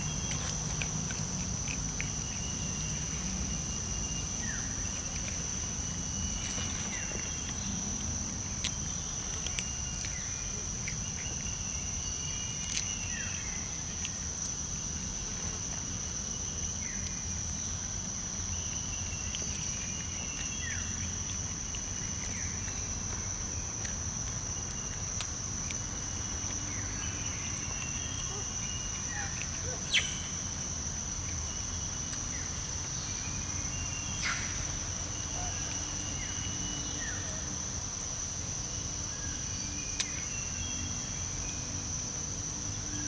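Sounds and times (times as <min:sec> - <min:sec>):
insects droning: 0:00.0 - 0:43.0.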